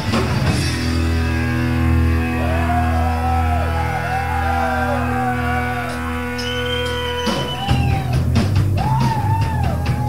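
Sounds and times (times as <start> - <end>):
electric guitar and bass chord: 0.0 - 7.3.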